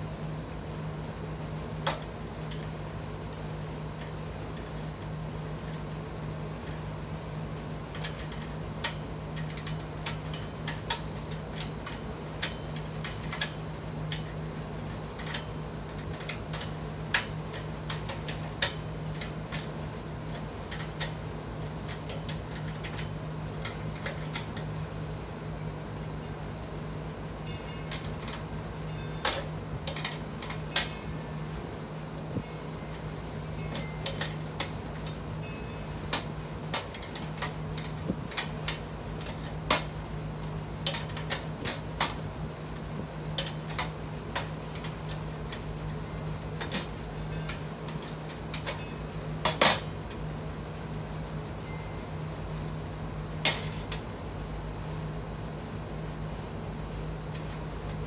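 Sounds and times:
steady low hum: 0.0 - 58.0
metal clicks of wrench and nuts: 7.9 - 19.7, 20.3 - 24.7, 27.8 - 28.5, 29.2 - 31.1, 32.9 - 35.2, 36.1 - 40.0, 40.8 - 42.2, 43.4 - 45.7, 46.6 - 50.0, 53.4 - 54.0.

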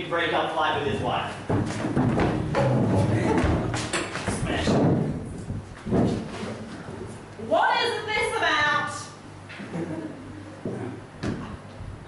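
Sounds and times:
footsteps and thuds on stage: 1.4 - 6.5
chairs knocking: 1.5 - 6.6.

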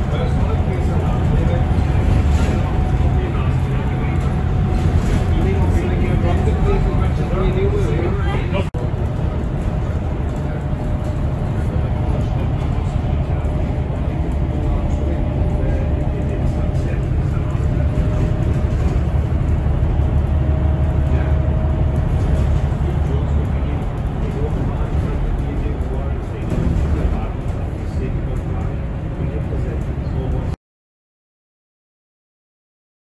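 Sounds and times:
vehicle engine and road rumble: 0.0 - 30.6.

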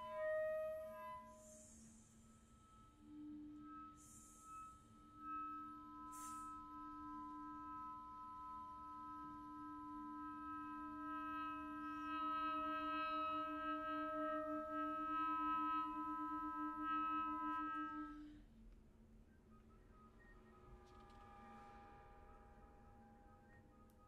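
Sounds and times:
chamber music with clarinet: 0.0 - 18.3.

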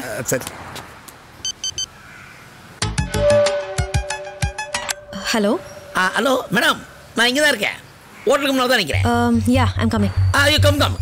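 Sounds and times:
short electronic beeps: 1.4 - 1.9.

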